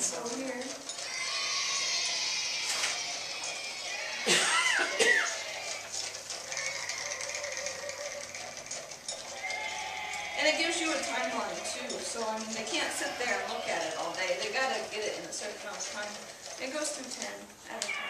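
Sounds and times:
crowd cheering: 1.0s - 8.4s, 9.3s - 14.9s.

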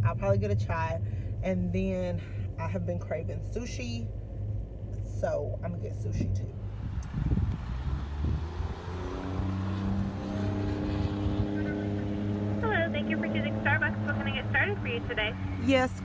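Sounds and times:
car engine idling: 0.0s - 16.0s
voice through order speaker: 12.6s - 16.0s.

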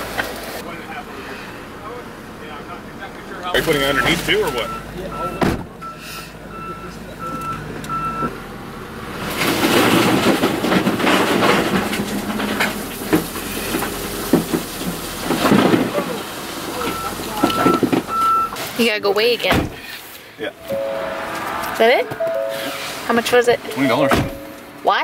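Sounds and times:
backup alarm beeping: 3.8s - 8.3s, 16.8s - 19.0s, 20.6s - 24.7s
gravel pouring into truck bed: 9.2s - 18.8s.

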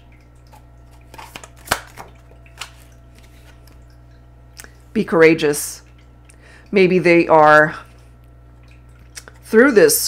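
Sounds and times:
low steady hum: 0.0s - 10.0s
cards handled and drawn: 1.1s - 3.8s.

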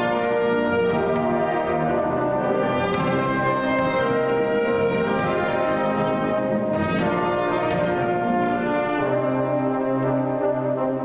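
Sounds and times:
wind band playing chords: 0.0s - 11.0s.

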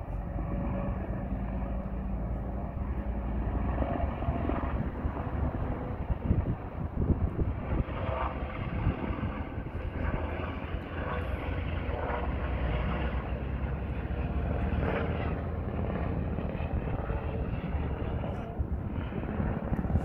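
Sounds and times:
helicopter in flight: 0.0s - 20.0s.

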